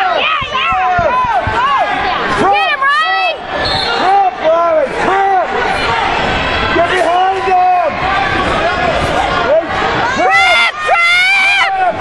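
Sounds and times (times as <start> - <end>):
people shouting: 0.0 - 12.0.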